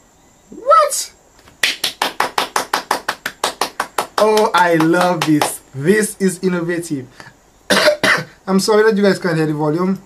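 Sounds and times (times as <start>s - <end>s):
rapid sharp taps: 1.4s - 5.7s.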